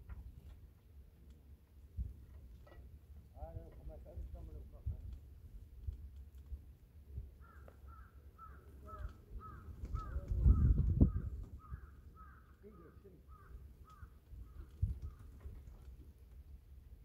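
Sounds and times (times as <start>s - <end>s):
wind rumbling on microphone: 1.8s - 12.4s, 13.3s - 17.0s
bird calling: 7.4s - 15.5s.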